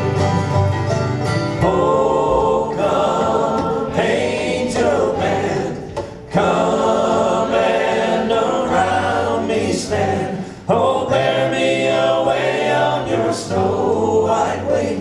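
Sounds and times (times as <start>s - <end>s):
congregation singing a hymn: 1.5s - 15.0s.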